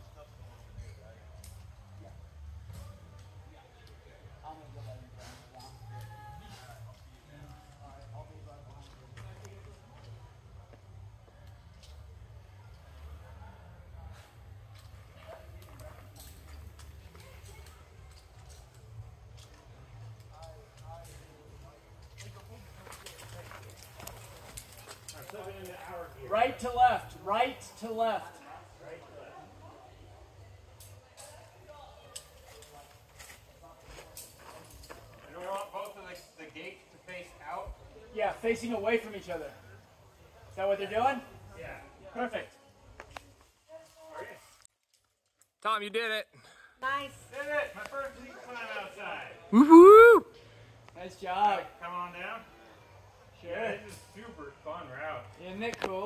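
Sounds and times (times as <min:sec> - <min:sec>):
faint indistinct voices: 0:00.0 - 0:44.7.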